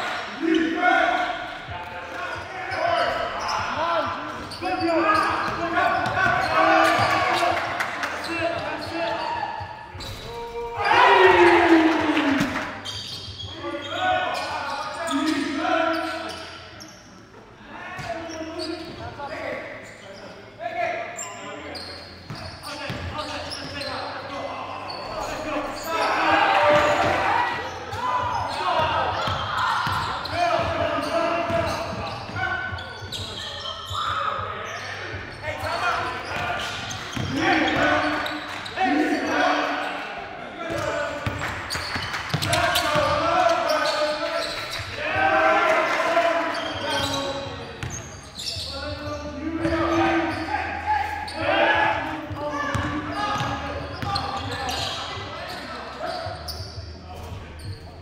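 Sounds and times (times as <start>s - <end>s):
players calling out: 0.0s - 57.8s.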